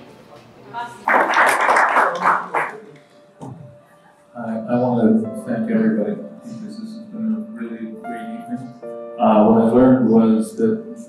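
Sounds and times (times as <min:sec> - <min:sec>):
audience clapping: 0:01.0 - 0:03.1.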